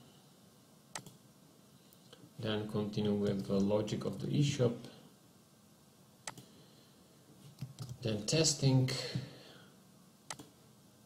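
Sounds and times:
computer mouse click: 0.9s - 1.2s, 6.2s - 6.5s, 10.3s - 10.6s.

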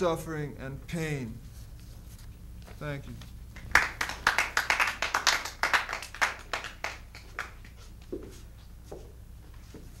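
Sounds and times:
small audience applauding: 3.6s - 7.8s.

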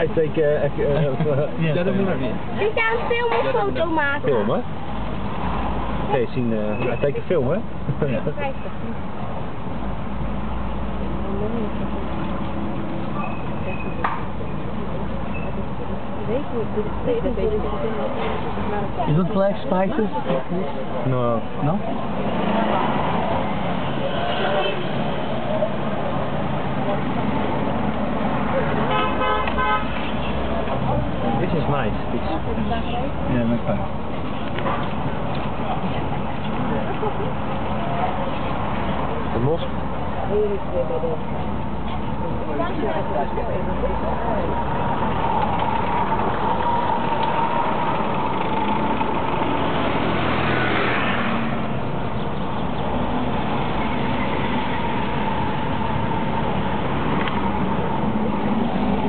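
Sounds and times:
road noise: 0.0s - 59.0s
vehicle horn tooting: 28.8s - 30.4s
scooter passing: 44.3s - 52.0s.

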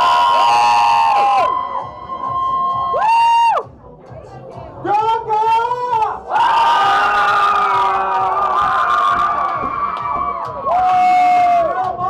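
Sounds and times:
loud held scream: 0.0s - 3.6s, 6.3s - 11.8s
crowd cheering and screaming: 0.0s - 3.7s, 6.3s - 11.9s.

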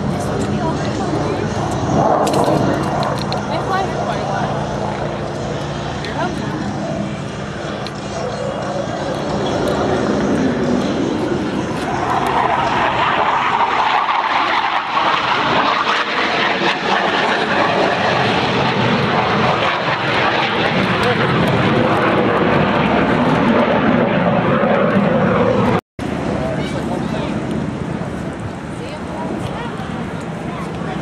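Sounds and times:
jet flying past: 0.0s - 31.0s.

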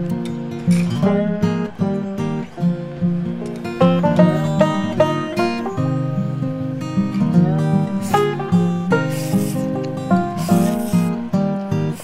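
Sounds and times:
acoustic guitar music: 0.0s - 12.0s
rasping brushing noise: 7.9s - 11.2s.

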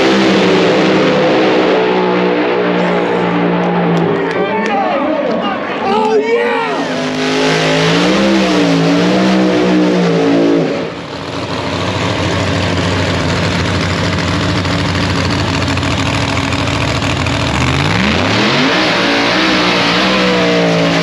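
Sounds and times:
drag car engine revving and idling: 0.0s - 4.3s, 6.7s - 21.0s.

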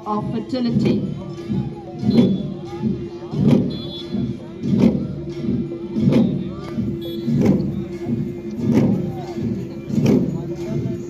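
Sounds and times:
long drums beaten in slow rhythm: 0.1s - 11.0s.

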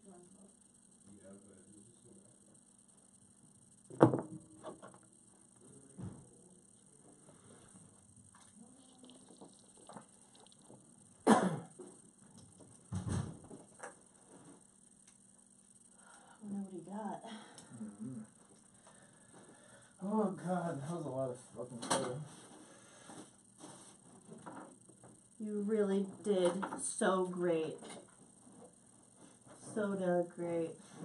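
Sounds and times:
knocks and thumps: 3.9s - 5.0s, 12.9s - 13.7s
low voices murmuring: 17.7s - 18.4s.

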